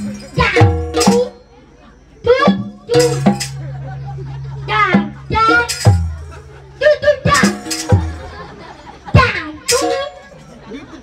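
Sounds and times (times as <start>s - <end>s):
traditional dance music: 0.0s - 10.9s
held low note: 2.8s - 6.9s.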